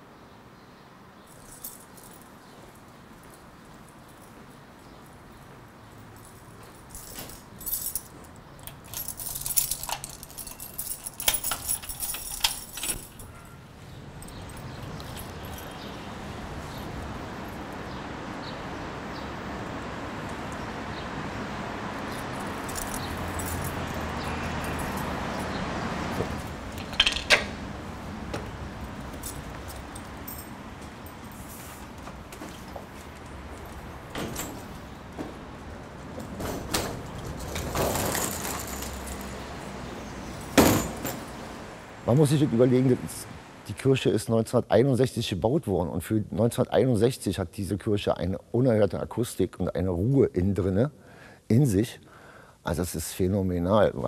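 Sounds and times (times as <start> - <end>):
city traffic rushing: 0.0 - 44.1
keys jangling: 1.3 - 5.4, 6.0 - 13.6, 14.2 - 16.1, 22.0 - 27.6, 28.9 - 41.5.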